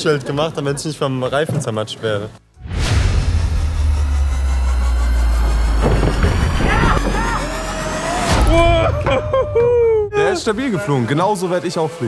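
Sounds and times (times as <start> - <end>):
people shouting and whooping: 6.5 - 12.0.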